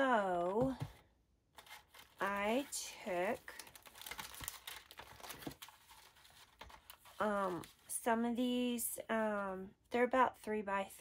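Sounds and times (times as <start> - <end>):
cardstock scraps rustling: 1.6 - 8.0.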